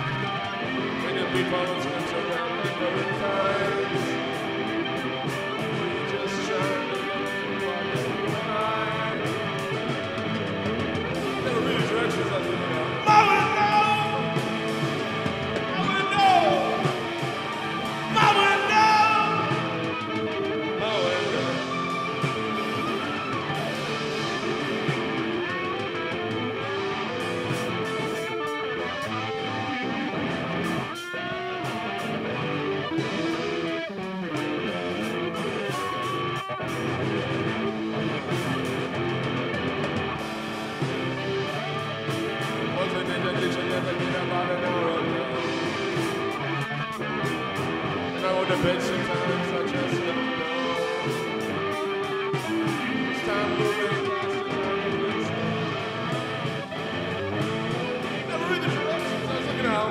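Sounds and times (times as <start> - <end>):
person singing: 0.0 - 30.0, 40.7 - 59.9
rock guitar music: 0.0 - 59.9.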